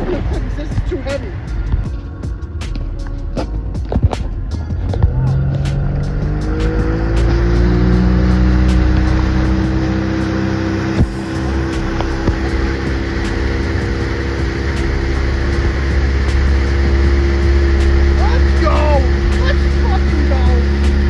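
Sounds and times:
speedboat engine: 0.0s - 21.0s.

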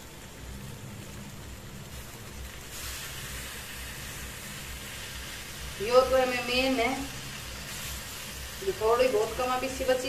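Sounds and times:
curry sizzling in a pan: 0.0s - 10.0s.

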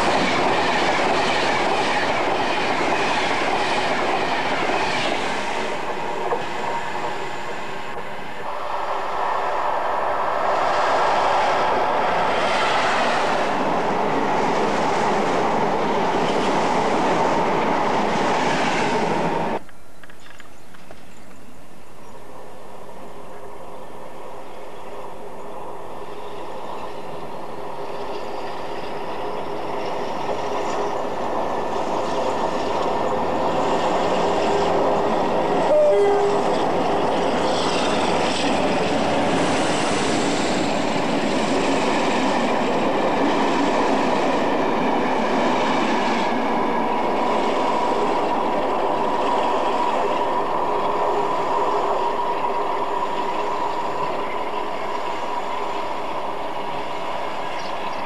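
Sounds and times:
train wheels clattering on rails: 0.0s - 8.2s.

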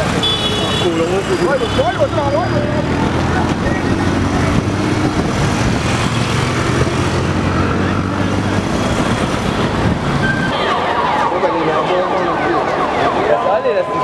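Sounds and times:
motorcycle engines running: 0.0s - 10.5s
crowd voices: 0.0s - 14.0s
people shouting: 10.2s - 14.0s.

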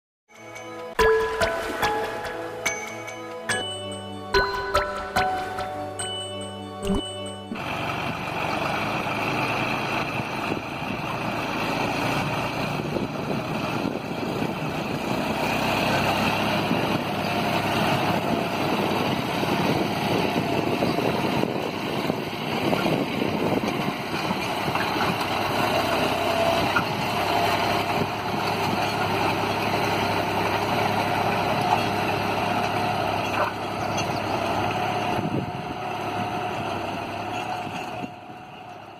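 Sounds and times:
tractor diesel engine under load: 0.4s - 38.9s.

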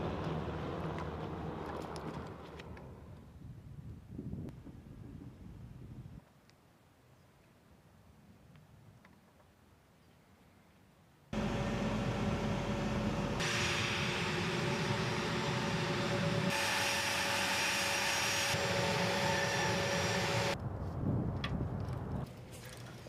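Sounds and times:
jet engines running with whine: 11.4s - 20.6s.

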